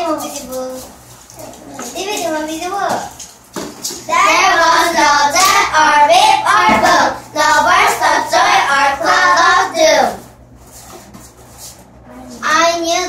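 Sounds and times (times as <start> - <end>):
young girls singing: 4.1 - 10.2.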